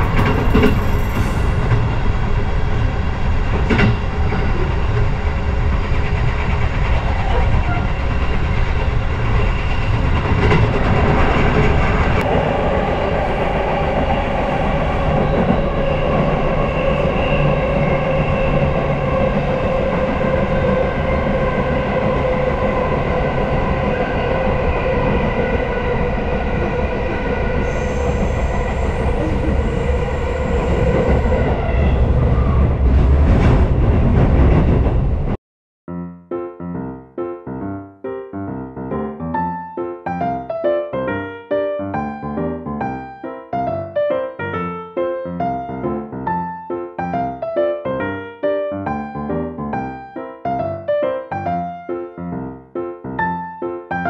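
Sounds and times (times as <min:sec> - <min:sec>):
train wheels rumbling on rails: 0:00.0 - 0:35.4
train motor whine: 0:26.6 - 0:32.6.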